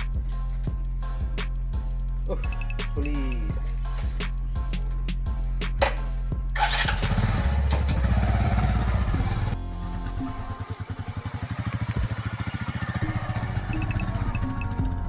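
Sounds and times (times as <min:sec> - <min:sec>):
music: 0:00.0 - 0:15.0
motorcycle engine riding off: 0:05.8 - 0:15.0.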